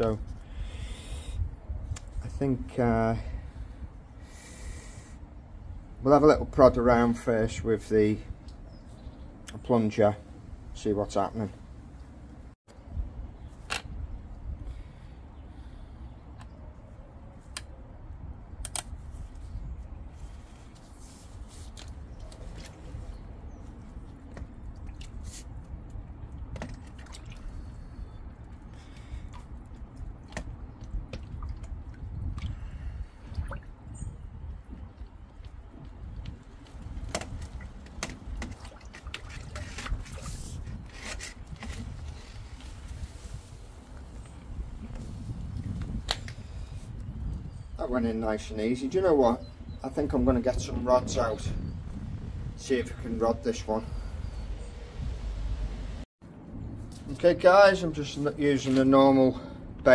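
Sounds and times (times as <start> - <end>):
water sloshing and splashing: 20.9 - 33.9, 34.5 - 42.0.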